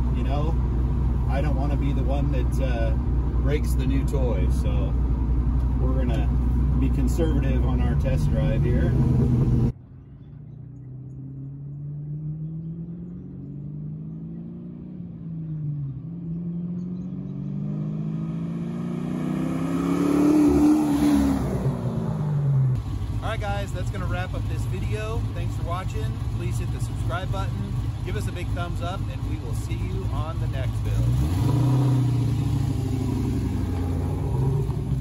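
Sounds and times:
car engine accelerating past: 10.4 - 22.8, 31.0 - 35.0.

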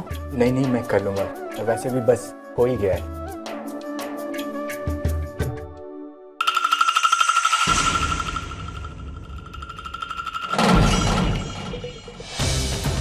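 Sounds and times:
high pulsing tremolo: 6.4 - 12.5.

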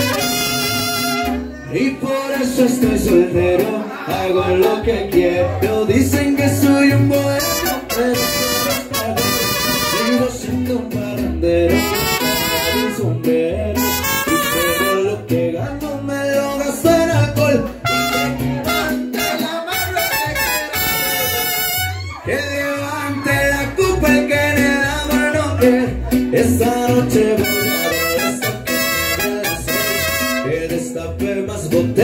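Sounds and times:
trumpets playing melody: 0.0 - 1.5, 7.3 - 10.5, 11.7 - 13.2, 13.8 - 15.2, 17.8 - 22.2, 27.3 - 30.6
mariachi band playing: 0.0 - 32.0
person singing: 0.0 - 32.0.

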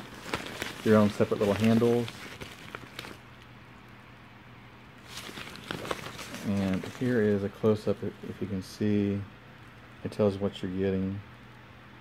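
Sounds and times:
fabric and cardboard rustling: 0.0 - 3.3, 5.0 - 8.6.

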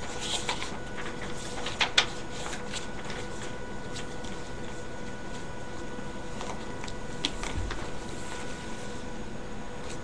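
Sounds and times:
book pages rustling: 0.0 - 9.1
faint steady hum: 0.0 - 10.0.

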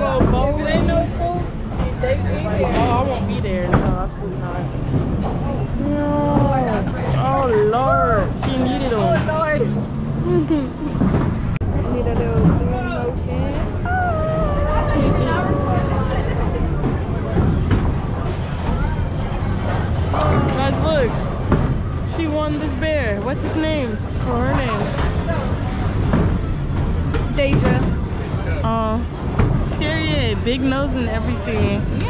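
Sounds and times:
chatter of busy room: 0.0 - 32.0.

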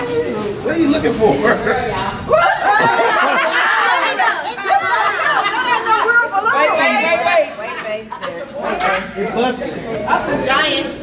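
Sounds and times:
overlapping indistinct chatter: 0.0 - 11.0.

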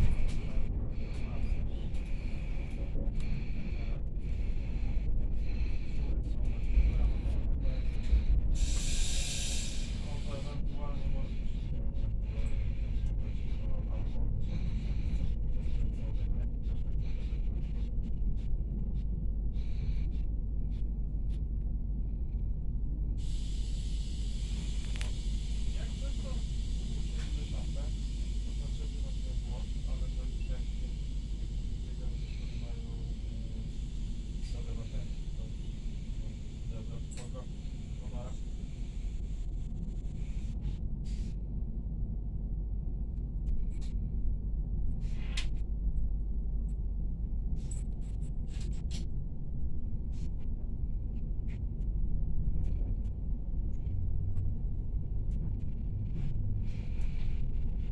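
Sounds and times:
train rumbling on rails: 0.0 - 57.9.

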